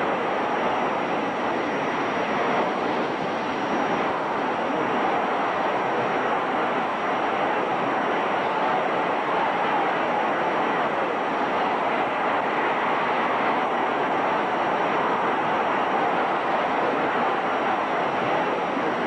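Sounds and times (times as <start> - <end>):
crowd cheering: 0.0 - 19.0.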